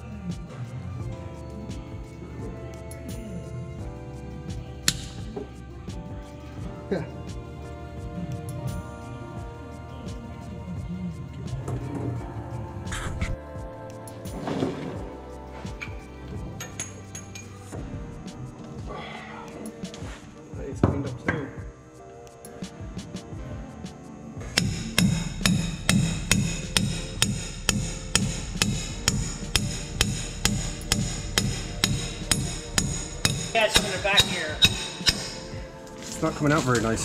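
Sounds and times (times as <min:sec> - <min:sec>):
hammer striking metal punch: 0:24.5 - 0:35.6.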